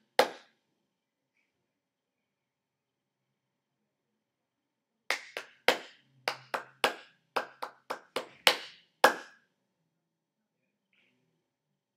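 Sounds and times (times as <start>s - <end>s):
hand claps: 0.1s - 0.5s, 5.1s - 9.4s.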